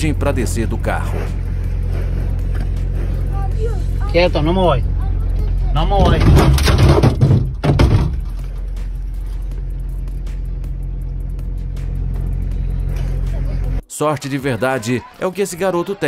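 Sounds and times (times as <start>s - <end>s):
car engine running: 0.0s - 13.8s
thumps and rattling on car body: 6.0s - 8.6s.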